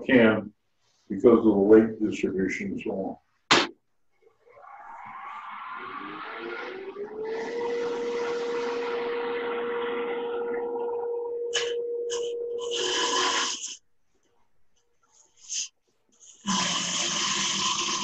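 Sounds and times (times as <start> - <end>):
lathe motor whine: 4.4 - 13.6
turning tool cutting wood: 16.4 - 18.0.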